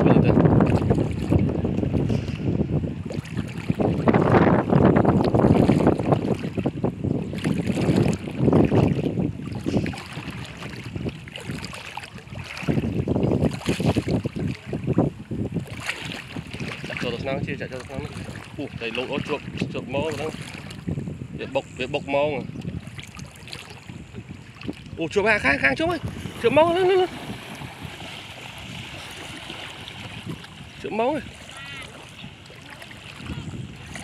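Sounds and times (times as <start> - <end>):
wading through shallow water: 0.0 - 34.0
wind buffeting microphone: 0.0 - 34.0.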